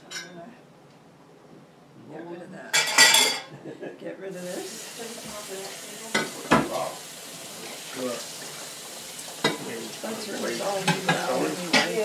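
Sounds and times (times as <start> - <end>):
dishes clinking: 0.0 - 0.4, 2.7 - 3.5, 5.6 - 6.9, 9.4 - 12.0
steady background hiss: 0.0 - 12.0.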